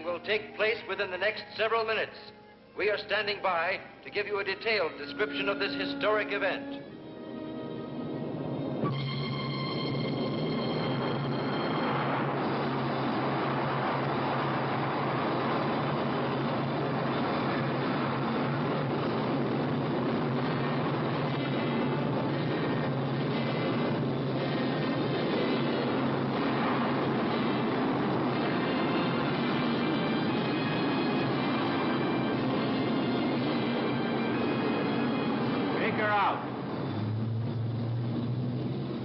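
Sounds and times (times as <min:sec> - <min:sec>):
rocket engine rushing: 0:08.3 - 0:39.0.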